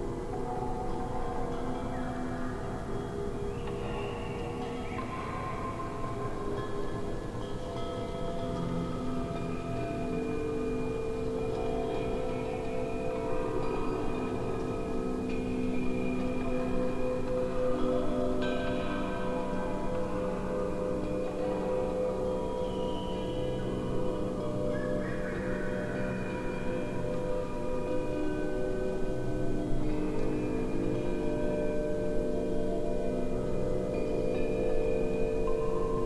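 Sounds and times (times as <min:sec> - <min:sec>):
electroacoustic wind chime music: 0:00.0 - 0:36.0.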